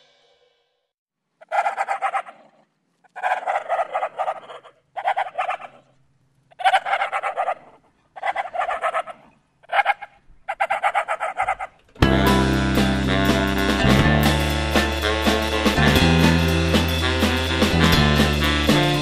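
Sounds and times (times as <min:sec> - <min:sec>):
stuttering fowl-like calls: 0:01.4 - 0:05.9, 0:06.5 - 0:11.8.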